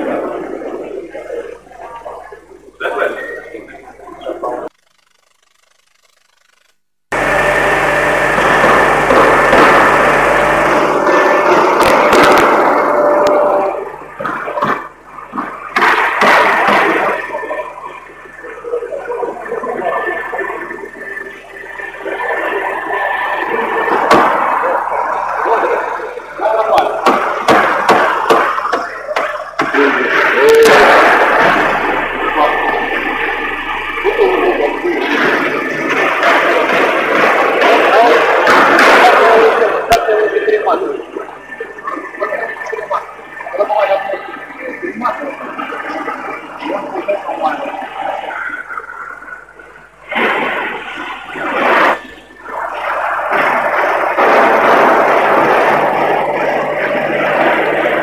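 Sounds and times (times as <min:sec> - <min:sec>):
indistinct voices: 0:00.0 - 0:04.7, 0:07.1 - 0:58.0
faint steady hum: 0:00.0 - 0:58.0
dense machinery clatter: 0:06.3 - 0:43.7, 0:50.1 - 0:58.0.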